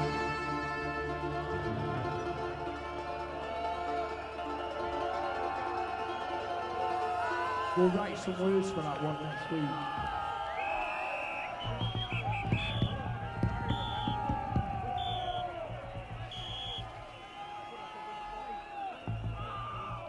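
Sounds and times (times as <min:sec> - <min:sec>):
crowd cheering: 0:00.0 - 0:20.0
whistle blasts: 0:10.2 - 0:20.0.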